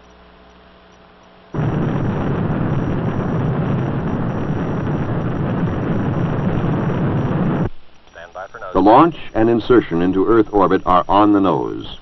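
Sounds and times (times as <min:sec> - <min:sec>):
rocket engines rumbling roar: 0:01.6 - 0:07.7.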